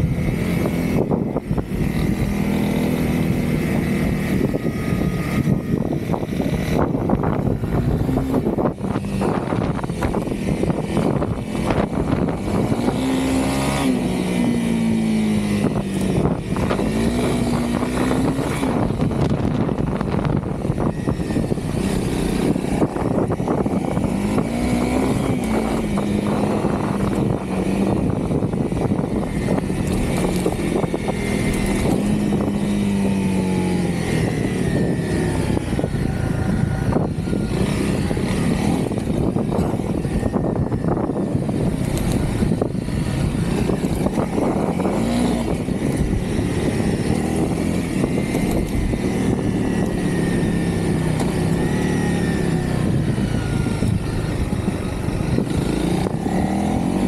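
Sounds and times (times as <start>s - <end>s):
motorcycle engine revving: 0.0s - 57.0s
wind rushing over microphone: 0.0s - 57.0s.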